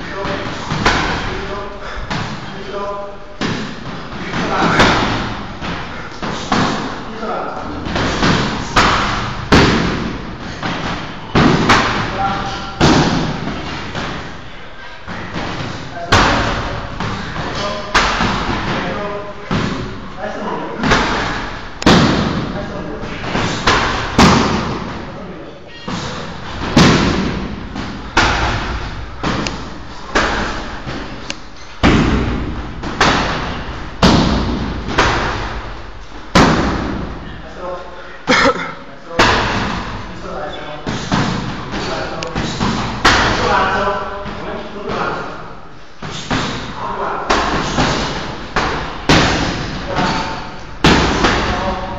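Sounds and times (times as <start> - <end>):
kicks and punches hitting pads: 0.1 - 2.5, 3.4 - 7.0, 7.7 - 14.3, 15.1 - 20.1, 20.8 - 25.1, 26.0 - 37.2, 39.2 - 40.1, 40.8 - 45.3, 46.0 - 51.9.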